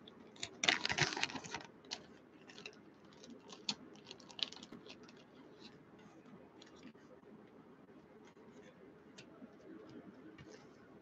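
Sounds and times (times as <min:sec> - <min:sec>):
plastic bag crinkling: 0:00.3 - 0:05.7.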